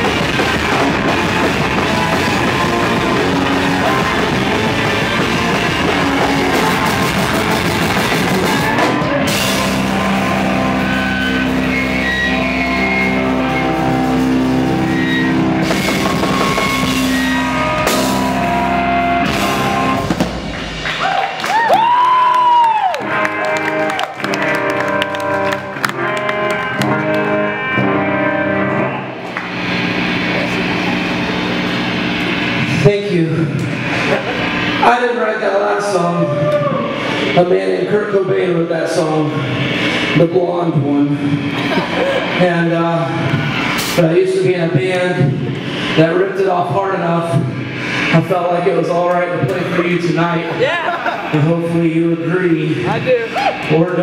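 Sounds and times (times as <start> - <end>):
live rock band playing: 0.0 - 54.0
ringing electric guitar: 0.0 - 54.0.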